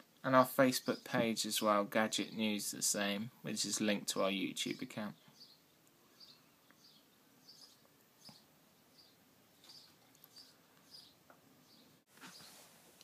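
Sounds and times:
bird chirping faintly: 3.7 - 12.7.

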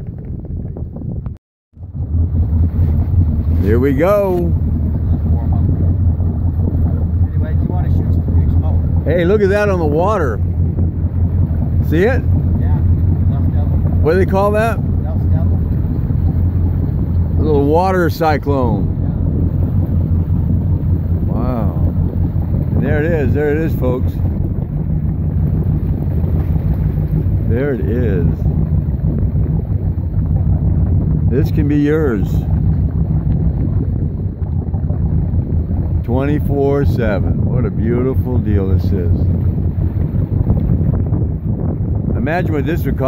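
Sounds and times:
motorboat engine drone: 0.0 - 43.0
wind rumbling on microphone: 0.0 - 43.0.

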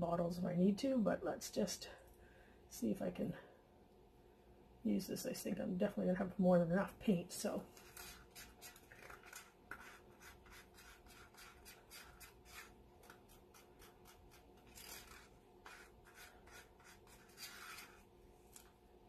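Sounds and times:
small scrapes and light clicks: 7.7 - 18.8.

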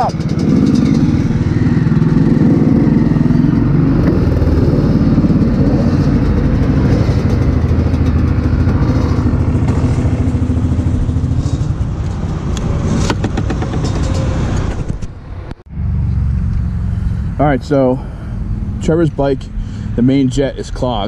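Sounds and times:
dirt bike engine running: 0.0 - 12.6.

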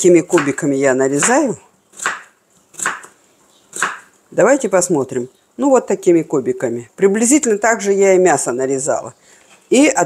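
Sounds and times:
knife slicing potato on wooden board: 2.0 - 3.1, 3.7 - 4.0.

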